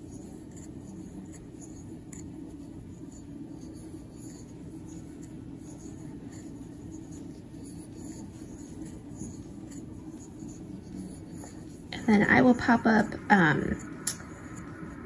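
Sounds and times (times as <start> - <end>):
steady low hum: 0.0 - 15.0
yarn rustling on crochet hook: 0.0 - 15.0.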